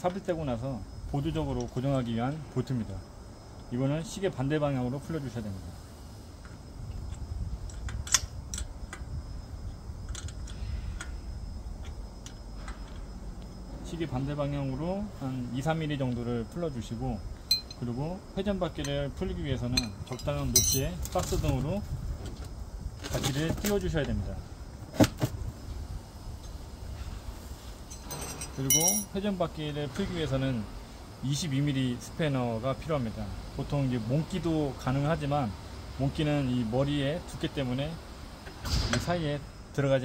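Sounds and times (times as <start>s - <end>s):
low outdoor rumble: 0.0s - 40.0s
spanner clicking on metal bolt: 7.6s - 9.0s, 27.9s - 29.1s
metallic clink of spanner: 17.5s - 17.8s, 19.7s - 21.0s, 27.9s - 29.2s.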